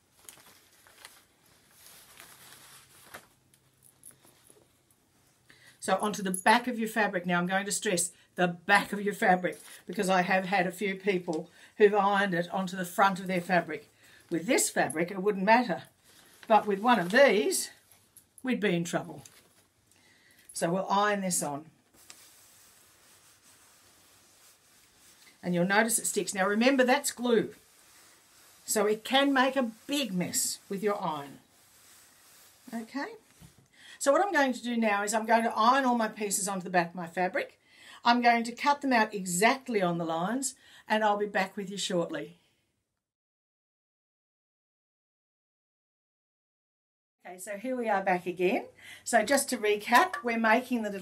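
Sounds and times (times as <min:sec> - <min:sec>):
paper sheets rustling: 0:00.0 - 0:04.6, 0:16.0 - 0:17.8, 0:21.9 - 0:33.7
crisp paper crinkles: 0:00.0 - 0:04.8, 0:16.0 - 0:18.2, 0:19.2 - 0:20.4, 0:21.8 - 0:33.7
iron sliding over fabric: 0:22.0 - 0:33.6.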